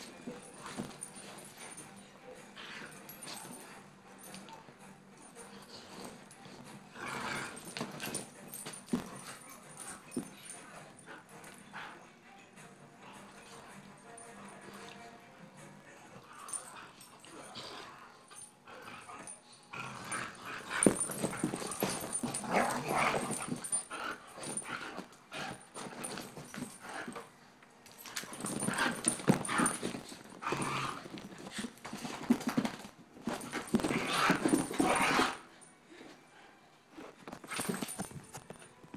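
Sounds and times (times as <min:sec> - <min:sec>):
dogs scuffling: 0:00.0 - 0:02.0, 0:07.4 - 0:11.6, 0:20.4 - 0:35.5, 0:37.0 - 0:38.9
dogs play-fighting vocal noises: 0:05.2 - 0:12.1, 0:16.1 - 0:27.3, 0:27.9 - 0:35.5.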